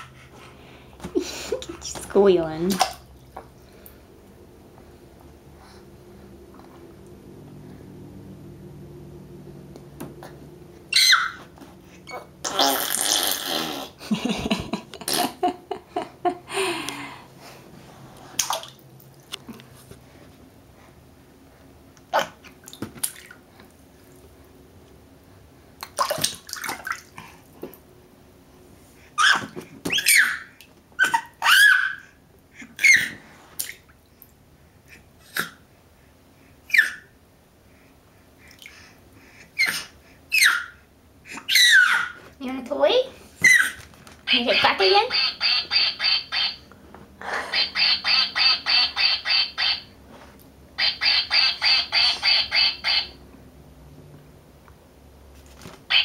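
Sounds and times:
baby splashing water: 0:01.5 - 0:03.9, 0:18.3 - 0:19.6, 0:22.1 - 0:23.5, 0:25.8 - 0:27.5
baby squealing and babbling: 0:10.9 - 0:14.0, 0:29.2 - 0:32.1, 0:32.8 - 0:33.2, 0:36.7 - 0:37.1, 0:39.6 - 0:42.2, 0:43.4 - 0:43.8.

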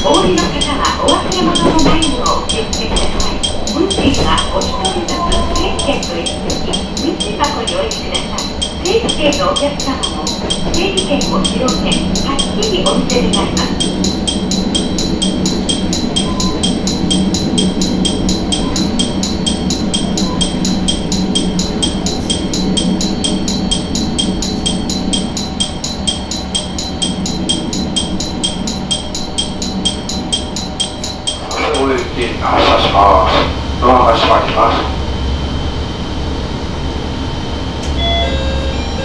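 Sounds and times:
electronic bell ringing: 0:00.0 - 0:32.1, 0:37.9 - 0:39.0
diesel railcar engine running: 0:00.0 - 0:39.0.

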